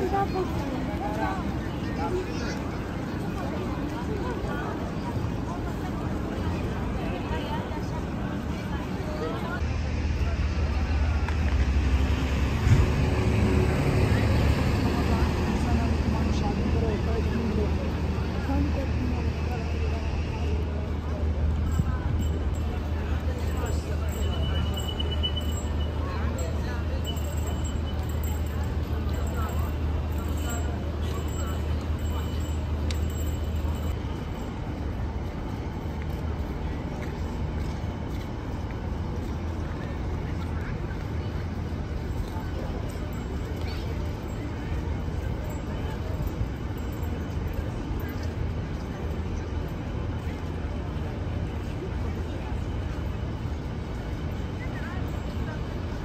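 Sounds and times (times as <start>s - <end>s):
bus engine rumbling: 0.0s - 56.0s
faint voices: 0.0s - 56.0s
people talking: 0.0s - 56.0s.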